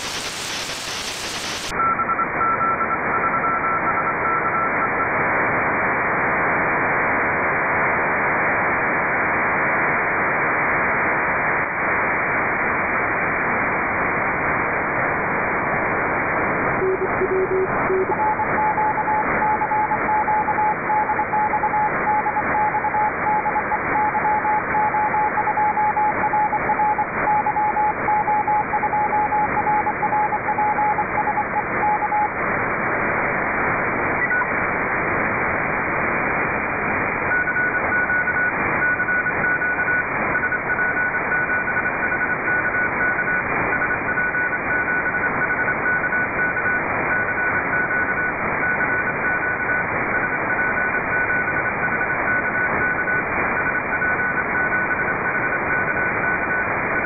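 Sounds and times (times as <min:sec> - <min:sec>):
morse code signal: 0:00.0 - 0:05.1, 0:16.6 - 0:32.5, 0:34.2 - 0:34.6, 0:37.2 - 0:57.0
shortwave radio static: 0:00.0 - 0:57.0
brief low tone: 0:16.8 - 0:18.4.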